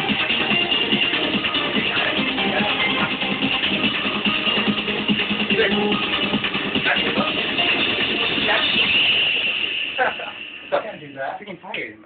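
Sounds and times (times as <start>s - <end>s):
loud music: 0.0s - 11.9s.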